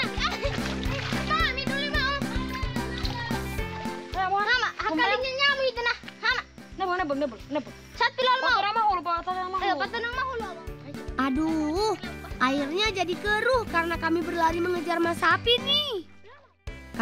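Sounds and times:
children calling out: 0.0 - 3.5.

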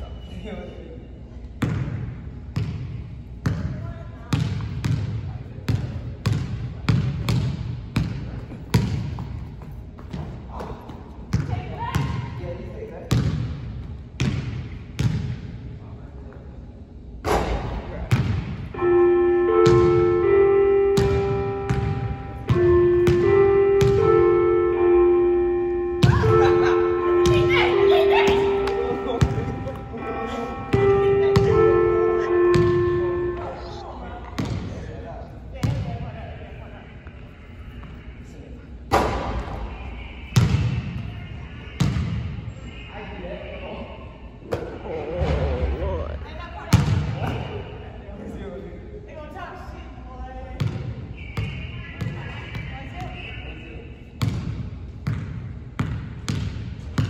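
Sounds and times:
music passage: 18.8 - 34.0
basketball bouncing on hardwood: 21.0 - 24.0.

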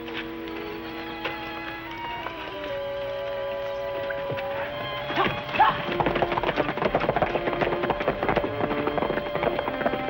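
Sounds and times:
background music with long notes: 0.0 - 10.0
rapid horse hoofbeats: 0.0 - 10.0.

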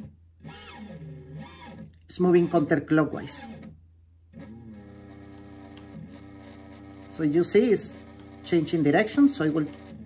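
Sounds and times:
electric motor whine: 0.0 - 3.7, 4.4 - 10.0.

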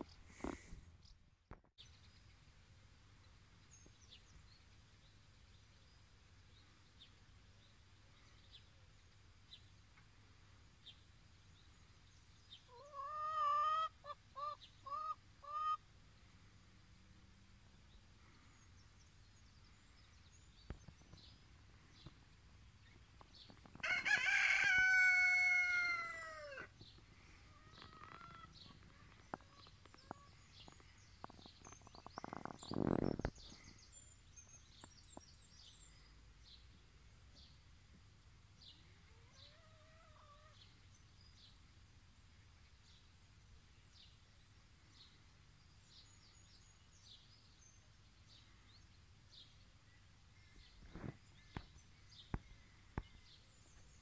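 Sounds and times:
chickens calling: 12.7 - 15.8, 23.8 - 33.3, 39.1 - 40.6
long loud crow-like call: 23.8 - 26.7
faint small-bird chirps: 26.8 - 37.6, 38.6 - 41.6.

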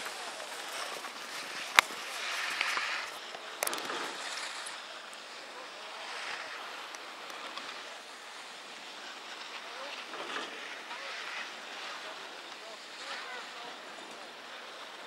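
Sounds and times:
faint distant voices calling: 0.0 - 15.0.

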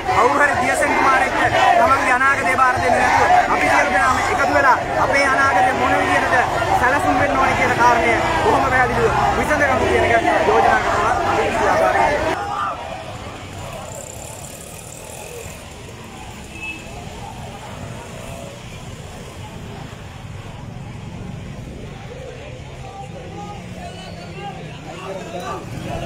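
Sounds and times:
crowd voices talking: 0.0 - 26.0.

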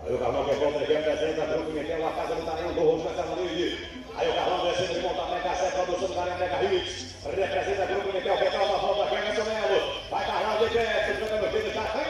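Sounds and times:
man speaking over loudspeakers: 0.0 - 12.0.

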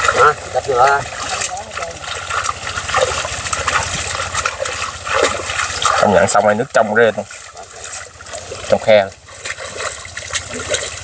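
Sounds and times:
hands splashing in water: 0.0 - 6.4, 7.2 - 11.0.

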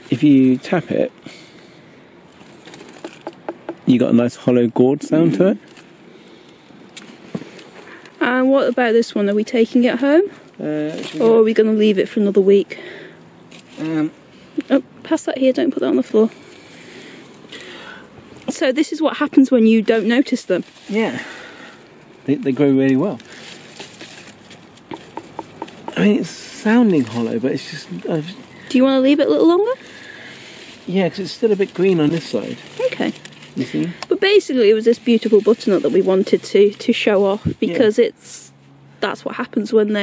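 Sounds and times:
fingers tapping squash: 3.0 - 3.9, 24.9 - 26.1.

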